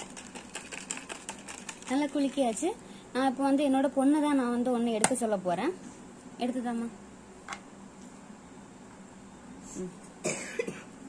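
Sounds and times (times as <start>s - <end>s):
person coughing: 10.2s - 10.9s.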